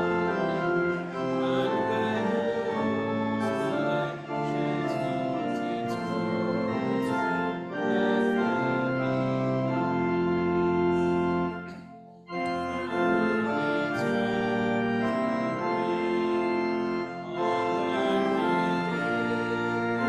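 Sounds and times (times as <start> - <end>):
organ playing hymn chords: 0.0 - 20.0.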